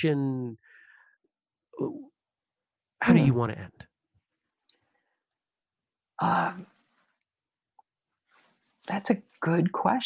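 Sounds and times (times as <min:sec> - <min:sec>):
woman speaking: 0:06.2 - 0:06.7.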